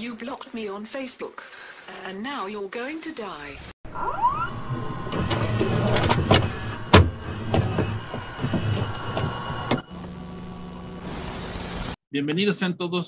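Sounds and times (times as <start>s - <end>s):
rising electronic sweeps: 3.9s - 12.0s.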